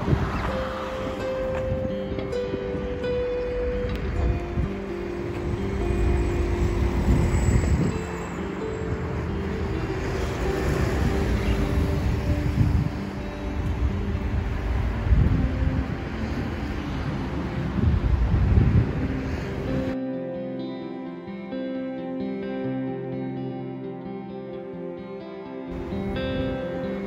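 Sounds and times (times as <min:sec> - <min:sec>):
wind rumbling on microphone: 0:00.0 - 0:20.0, 0:25.7 - 0:27.0
instrumental background music: 0:00.0 - 0:27.0
street noise: 0:00.0 - 0:27.0.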